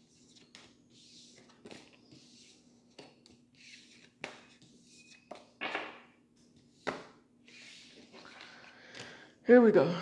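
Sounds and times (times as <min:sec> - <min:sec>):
cards tapping and sliding: 0:02.9 - 0:05.5, 0:06.4 - 0:09.1.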